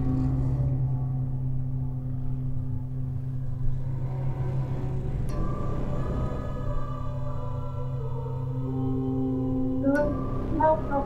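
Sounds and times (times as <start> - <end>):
dark ambient droning music: 0.0 - 11.0.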